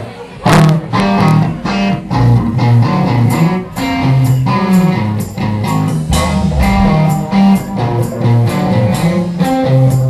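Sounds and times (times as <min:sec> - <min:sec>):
distorted electric guitars: 0:00.5 - 0:10.0
bass notes: 0:04.0 - 0:10.0
steady drum hits: 0:05.9 - 0:08.4.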